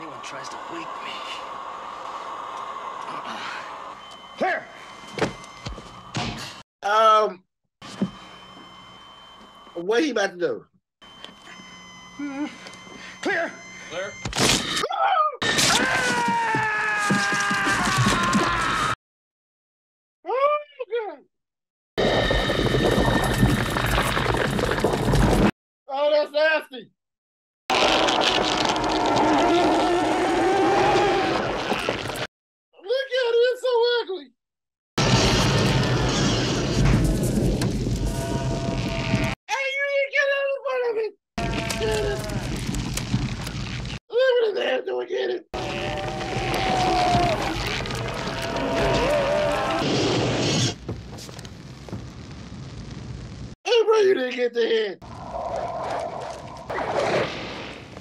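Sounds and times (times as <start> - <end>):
wavering drawn-out tone: 11.0 - 14.8
loud crackling noise: 22.0 - 25.5, 27.7 - 32.3, 35.0 - 39.4, 41.4 - 44.0, 45.6 - 53.6.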